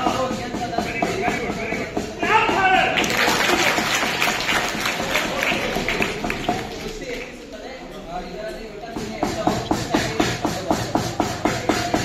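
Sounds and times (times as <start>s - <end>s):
group applause: 2.9s - 7.4s.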